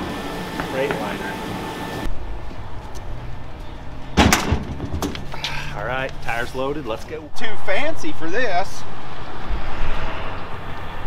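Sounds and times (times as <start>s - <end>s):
loud thump: 4.2s - 5.3s.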